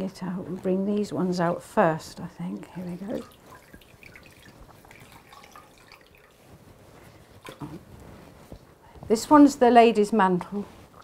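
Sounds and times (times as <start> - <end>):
water dripping into a bowl: 2.2 - 6.4.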